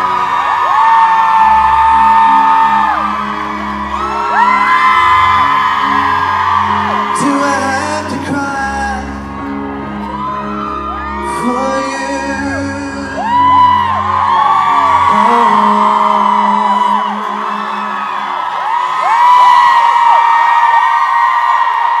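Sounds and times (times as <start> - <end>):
crowd screaming and cheering: 0.0 - 22.0.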